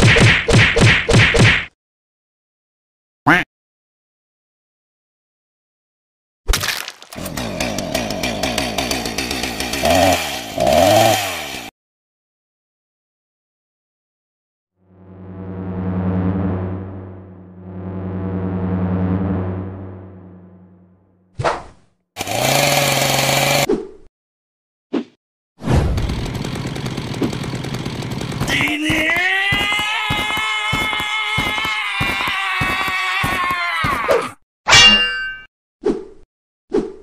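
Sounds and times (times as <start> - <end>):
chainsaw running and revving: 7.1 - 11.7, 22.2 - 23.7, 26.0 - 29.2.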